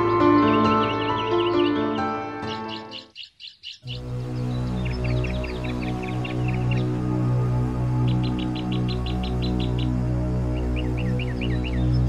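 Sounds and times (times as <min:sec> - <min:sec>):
small birds chirping: 0:00.2 - 0:12.0
film score low drone: 0:04.0 - 0:12.0.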